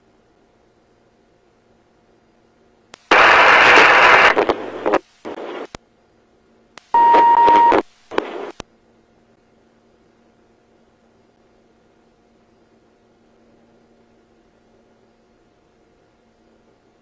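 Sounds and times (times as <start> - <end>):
radio static bursts: 3.0 - 5.8, 6.8 - 8.6
steady radio beep: 6.9 - 7.9.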